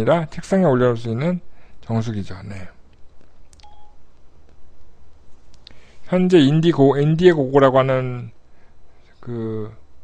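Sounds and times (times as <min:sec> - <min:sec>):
low electrical hum: 0:00.0 - 0:10.0
electronic beep: 0:03.6 - 0:04.0.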